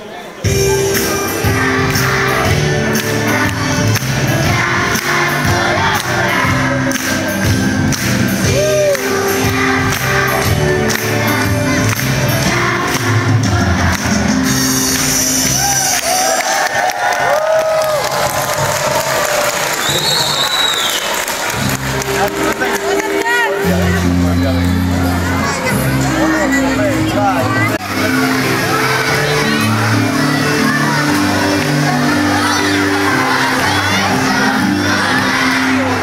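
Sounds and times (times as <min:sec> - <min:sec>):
children's choir singing: 0:00.5 - 0:15.4, 0:27.6 - 0:36.0
music with repeating bass line: 0:00.6 - 0:15.5
crowd cheering and whooping: 0:08.4 - 0:09.2, 0:15.2 - 0:22.4.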